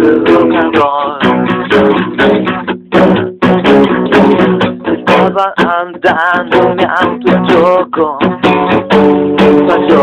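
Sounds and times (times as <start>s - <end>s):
strummed rock guitar chords: 0.0s - 10.0s.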